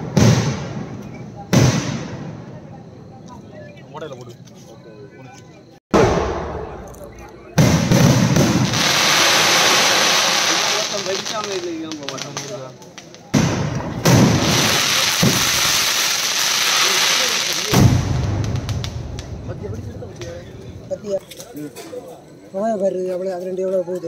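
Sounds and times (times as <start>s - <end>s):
firework bangs: 0.0s - 2.9s, 5.9s - 21.0s
firework crackling: 6.0s - 21.4s.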